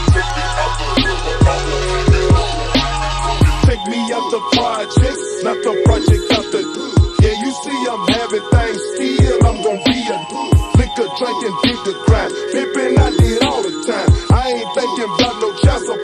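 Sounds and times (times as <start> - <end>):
rapping over a beat: 0.0 - 16.0.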